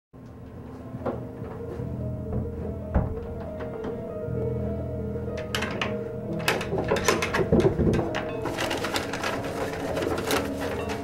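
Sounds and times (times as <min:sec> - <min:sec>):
heavy bump: 0:02.2 - 0:04.1
rummaging in wooden drawers: 0:05.4 - 0:11.0.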